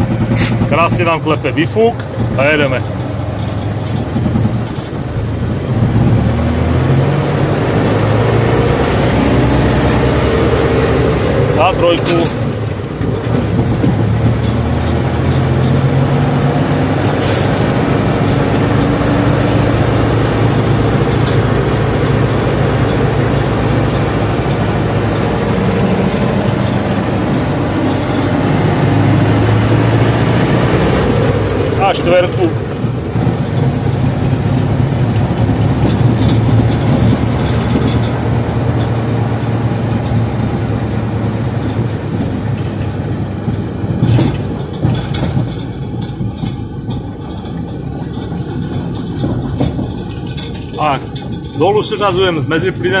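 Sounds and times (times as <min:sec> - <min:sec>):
diesel truck engine under load: 0:00.0 - 0:53.0
exhaust knocking: 0:00.0 - 0:53.0.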